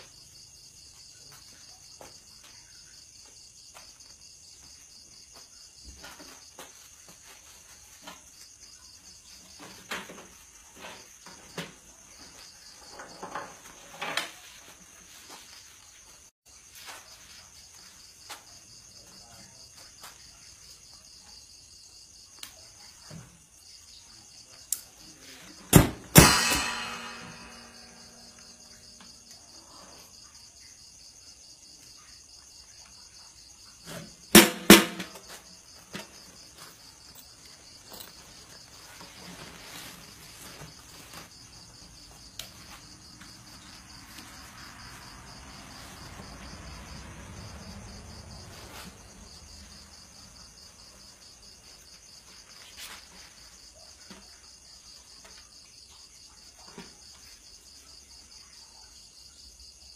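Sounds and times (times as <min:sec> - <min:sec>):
crickets chirping: 0:00.0 - 0:59.9
drum knocks: 0:25.8 - 0:28.4
guitar handling sounds: 0:26.1 - 0:28.4.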